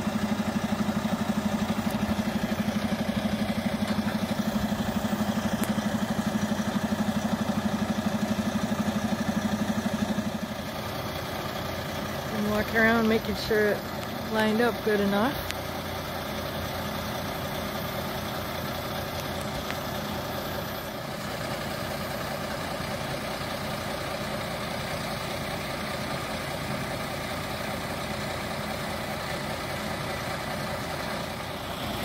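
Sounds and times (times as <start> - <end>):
diesel engine idling: 0.0 - 32.0.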